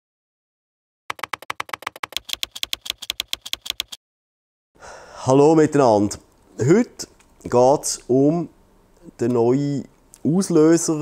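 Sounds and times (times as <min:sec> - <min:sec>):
keyboard typing clicks: 0:01.1 - 0:04.0.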